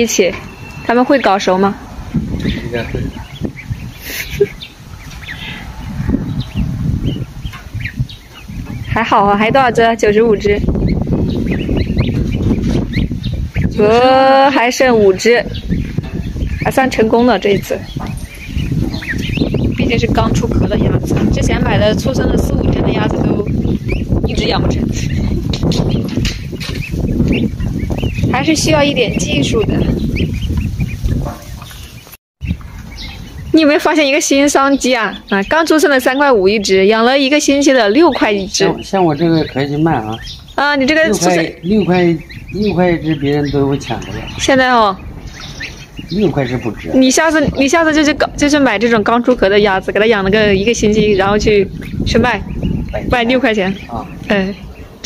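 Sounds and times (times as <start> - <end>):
ducklings peeping: 0.0 - 55.0
low rumble: 41.8 - 55.0.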